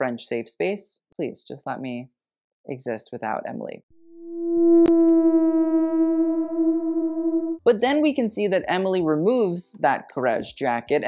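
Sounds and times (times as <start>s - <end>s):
held synth note: 4.0s - 7.6s.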